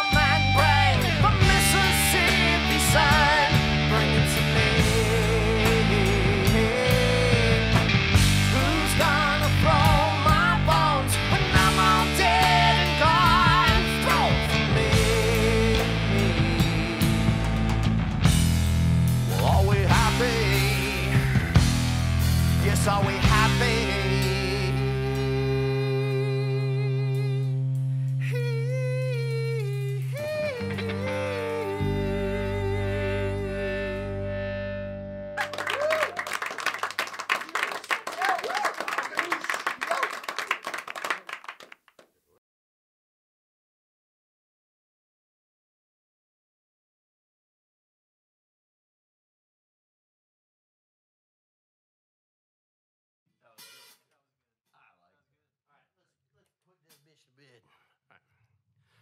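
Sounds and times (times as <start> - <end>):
wordless singing with vibrato: 0.0 - 17.5, 19.3 - 21.6, 22.6 - 27.6, 28.2 - 34.0
keyboard: 0.0 - 26.3, 30.4 - 35.5
bass guitar: 0.0 - 36.4.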